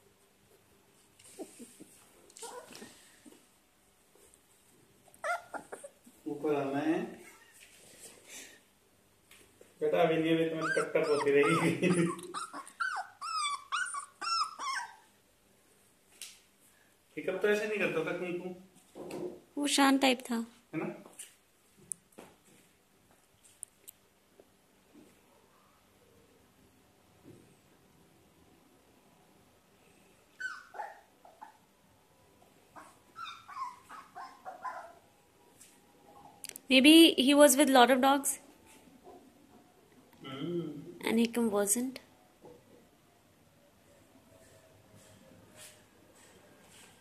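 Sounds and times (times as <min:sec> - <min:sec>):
puppy whining: 0:01.3 - 0:03.2, 0:05.1 - 0:06.2, 0:07.2 - 0:07.6, 0:10.4 - 0:15.2, 0:30.3 - 0:31.7, 0:32.7 - 0:35.1.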